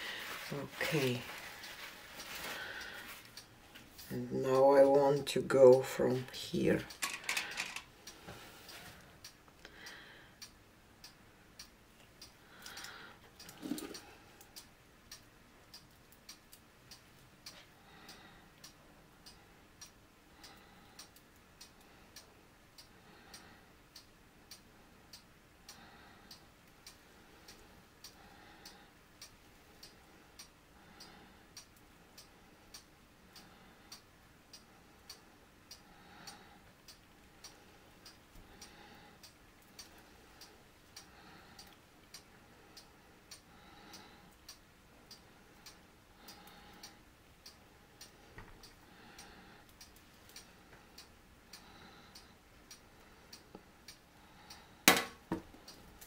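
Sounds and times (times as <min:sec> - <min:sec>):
faint regular ticking: 0:00.0 - 0:56.0.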